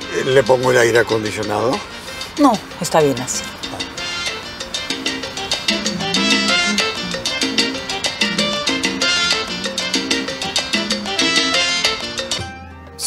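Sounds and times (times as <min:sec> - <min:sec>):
latin dance music on car stereo: 0:00.0 - 0:12.8.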